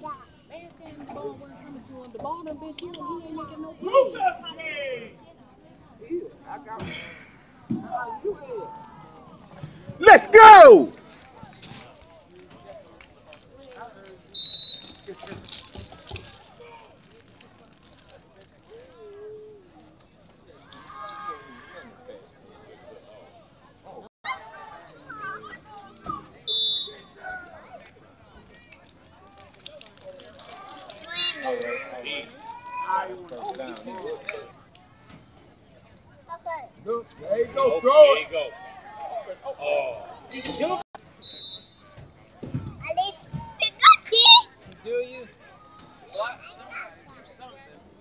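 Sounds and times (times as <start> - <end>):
faint crowd talking: 0.0 - 48.0
referee's whistle blast: 26.5 - 27.0, 41.2 - 41.9.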